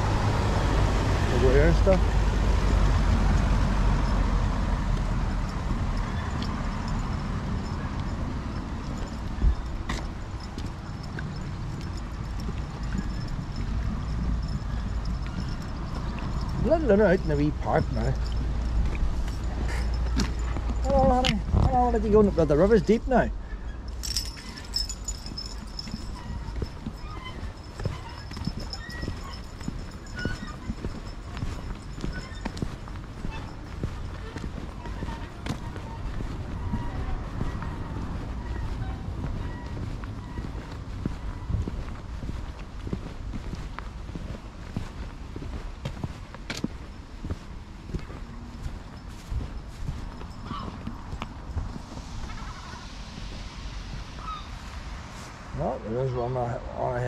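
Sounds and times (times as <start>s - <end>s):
steady low rumble: 0.0s - 22.6s
footsteps on tarmac: 0.0s - 55.4s.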